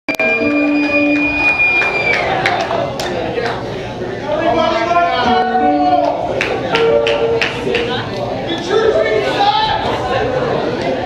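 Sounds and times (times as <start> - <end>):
high tone sliding down: 0.1 - 2.2
live rock band holding notes: 0.1 - 2.2.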